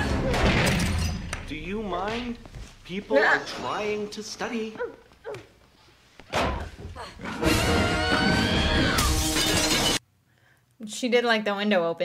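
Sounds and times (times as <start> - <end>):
glass window shattering: 9.0 - 10.0.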